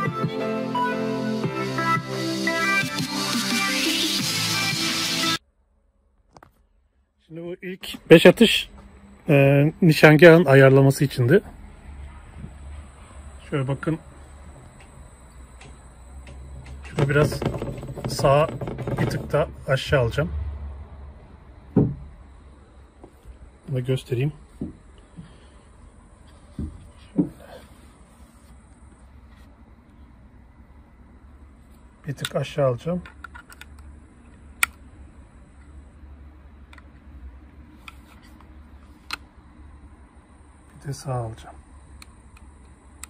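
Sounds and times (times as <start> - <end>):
low steady hum: 5.4 - 43.0
dull thump: 17.0 - 19.4, 21.7 - 22.1.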